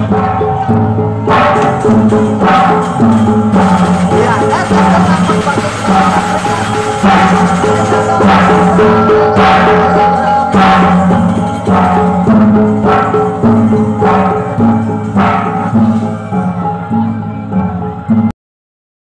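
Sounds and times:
large drums beaten steadily: 0:00.0 - 0:18.3
low held tone: 0:00.0 - 0:18.3
sharp crashing accents: 0:01.3 - 0:16.3.

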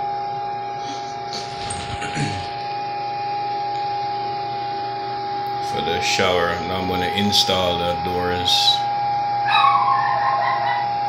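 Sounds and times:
high-pitched hum: 0:00.0 - 0:11.0.

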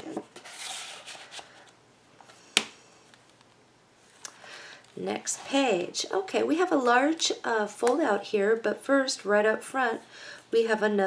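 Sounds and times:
paper rustling: 0:00.0 - 0:01.7.

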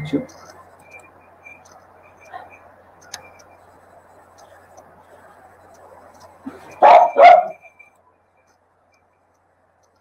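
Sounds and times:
dog barking: 0:06.7 - 0:07.7.

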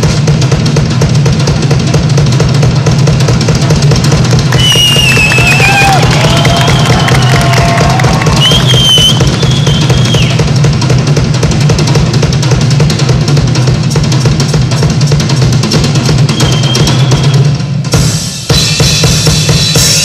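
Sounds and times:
drum kit playing: 0:00.0 - 0:20.0.

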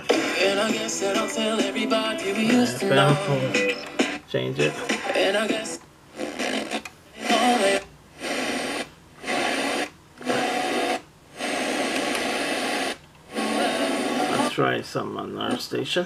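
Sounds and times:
radio static hiss: 0:00.0 - 0:16.0
radio broadcast audio: 0:02.4 - 0:03.6, 0:14.2 - 0:15.7.

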